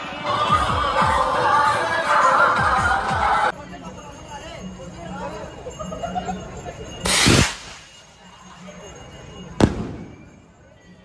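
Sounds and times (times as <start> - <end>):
firework rocket hissing: 7.1 - 8.0
firework bang: 9.6 - 10.4.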